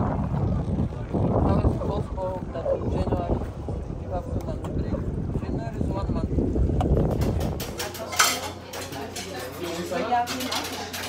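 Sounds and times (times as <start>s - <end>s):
wind buffeting microphone: 0.0s - 8.2s
faint voices: 0.0s - 11.0s
plates clattering: 7.1s - 11.0s.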